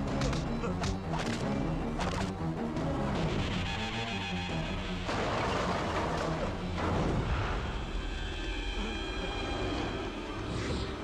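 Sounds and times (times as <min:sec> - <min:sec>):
action film score with steady beat: 0:00.0 - 0:11.0.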